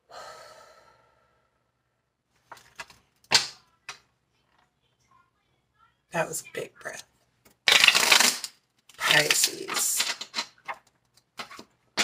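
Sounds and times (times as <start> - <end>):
person breathing out heavily: 0.0 - 1.6.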